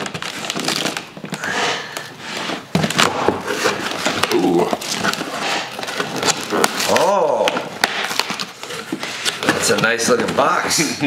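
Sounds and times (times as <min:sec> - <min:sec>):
packing tape tearing: 0:00.0 - 0:10.5
cardboard rustling and scraping: 0:00.0 - 0:10.9.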